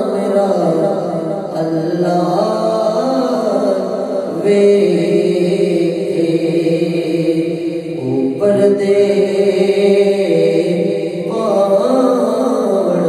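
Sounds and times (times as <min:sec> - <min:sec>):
man chanting into microphone: 0:00.0 - 0:13.0.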